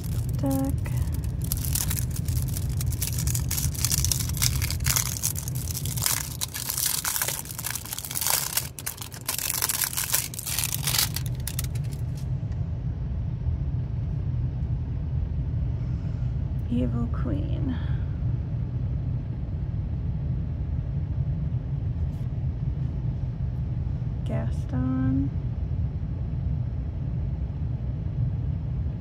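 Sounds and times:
plastic wrapping crinkling: 0.0 - 12.2
low rumble: 0.0 - 29.0.

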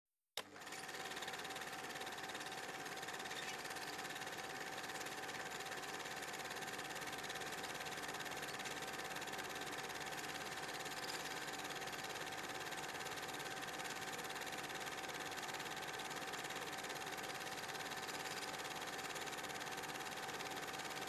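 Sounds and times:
film projector clatter: 0.4 - 21.0.

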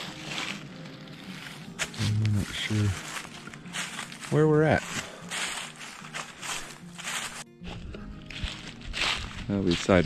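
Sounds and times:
footsteps crunching dry leaves: 0.0 - 10.0
soft background music: 0.0 - 10.0.

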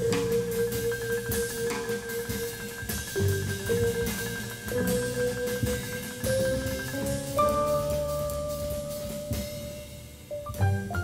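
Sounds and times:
double bass: 0.0 - 11.0
drum kit cymbals: 0.0 - 11.0.

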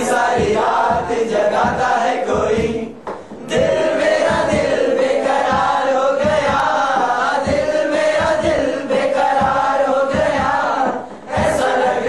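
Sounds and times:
crowd of men chanting: 0.0 - 2.9, 3.5 - 12.0
steady low beat: 0.0 - 12.0.

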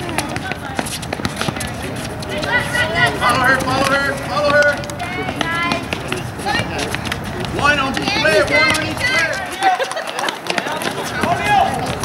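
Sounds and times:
shoes on hard court: 0.0 - 12.0
children shouting: 2.3 - 3.8.

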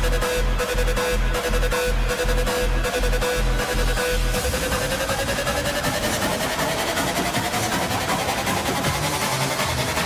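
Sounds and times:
hardstyle dance music over sound system: 0.0 - 10.0
rapid pulsing drum roll: 2.9 - 10.0.

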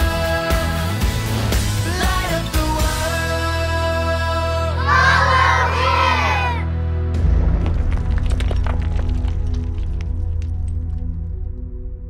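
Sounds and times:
background music: 0.0 - 12.0
children shouting and cheering: 4.8 - 6.8.

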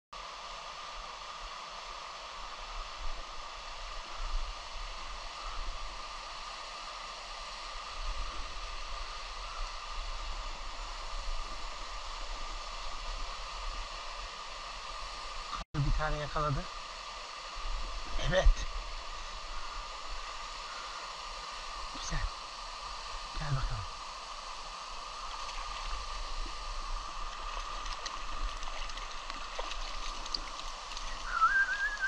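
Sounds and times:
stream water rushing: 0.2 - 32.0.

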